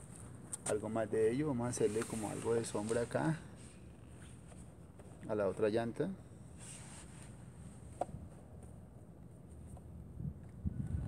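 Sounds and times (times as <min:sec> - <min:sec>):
faint low background hum: 0:00.0 - 0:11.0.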